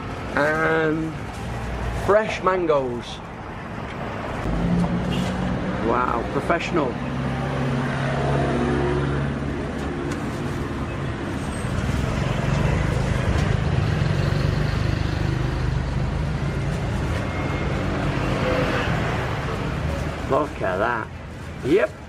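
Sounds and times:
road traffic engines humming: 0:00.0 - 0:22.0.

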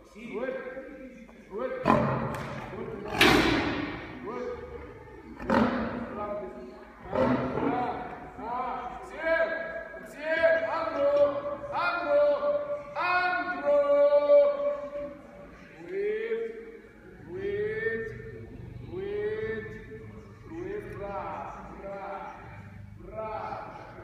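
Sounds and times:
man shouting calls: 0:09.1 - 0:15.0.

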